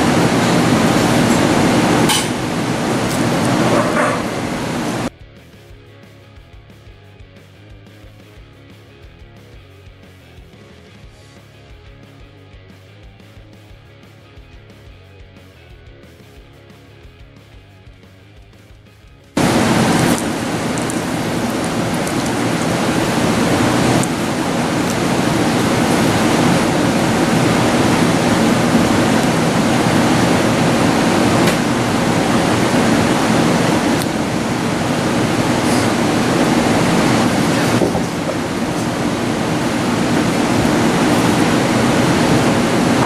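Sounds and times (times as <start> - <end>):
loud steady rushing noise: 0.0 - 5.1, 19.4 - 43.0.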